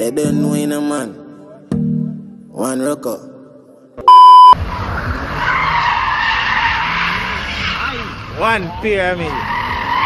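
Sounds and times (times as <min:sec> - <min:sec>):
loud steady beep: 0:04.1 - 0:04.6
tyres skidding: 0:04.6 - 0:10.0.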